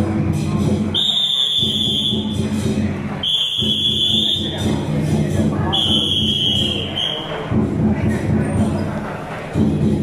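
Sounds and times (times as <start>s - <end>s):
percussion music: 0.0s - 10.0s.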